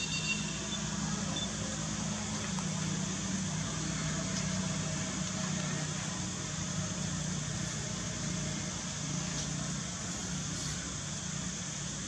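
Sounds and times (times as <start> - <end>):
constant hiss: 0.0 - 12.0.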